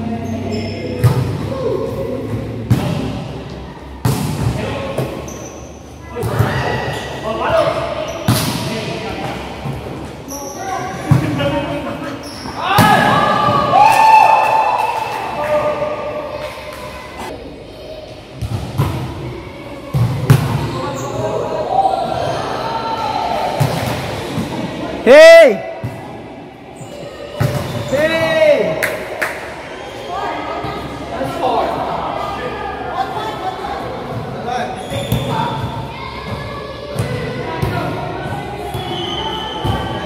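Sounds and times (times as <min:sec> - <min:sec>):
volleyball hits echoing: 0:01.0 - 0:01.6, 0:02.6 - 0:05.2.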